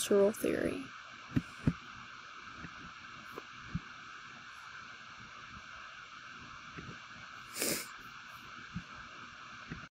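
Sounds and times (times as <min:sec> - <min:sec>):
sharp exhale through nose: 0:07.5 - 0:07.9.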